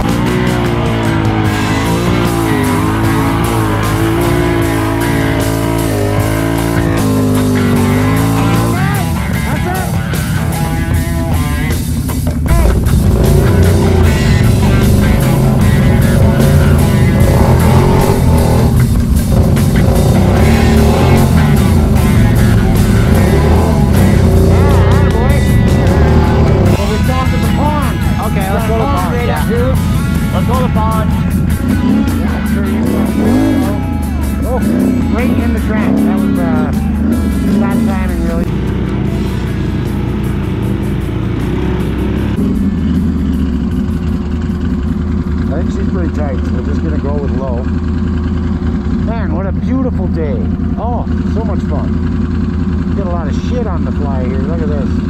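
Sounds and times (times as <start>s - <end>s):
atv engine running: 0.0s - 55.0s
rock music with singing: 0.0s - 55.0s.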